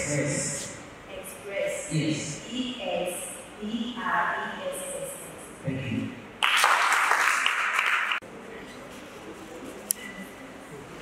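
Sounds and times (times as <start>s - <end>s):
audience applauding: 6.4s - 8.2s.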